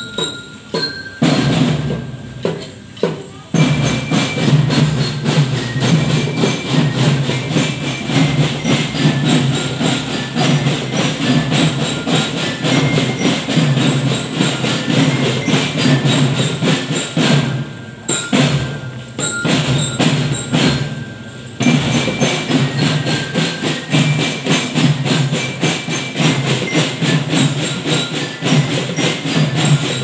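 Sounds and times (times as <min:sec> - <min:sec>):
marching drum band: 0:00.0 - 0:30.0.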